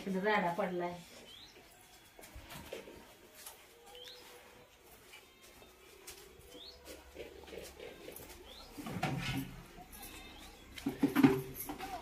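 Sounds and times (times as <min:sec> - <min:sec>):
bird chirping: 0:01.2 - 0:01.9, 0:03.8 - 0:04.4, 0:06.4 - 0:07.1, 0:07.9 - 0:11.1.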